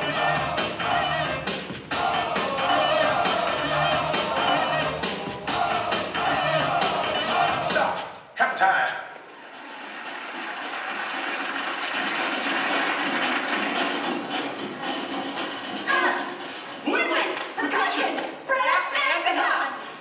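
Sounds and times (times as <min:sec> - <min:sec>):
audience applause and cheering: 0:00.0 - 0:08.0, 0:09.2 - 0:16.7
backing music: 0:00.0 - 0:08.2, 0:10.0 - 0:16.9.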